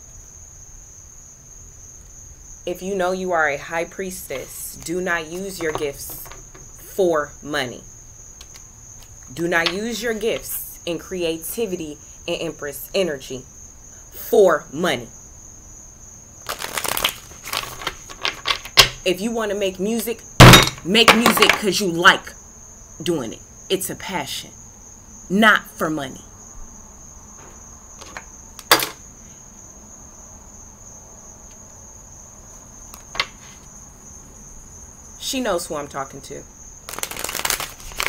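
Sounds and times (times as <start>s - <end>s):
cards being shuffled: 16.4s - 19.0s, 36.9s - 38.0s.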